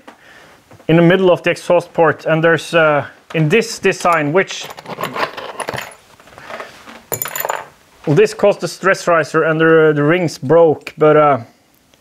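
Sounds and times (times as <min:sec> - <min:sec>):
small metal parts clinking: 0:04.1 - 0:06.1, 0:07.1 - 0:07.7.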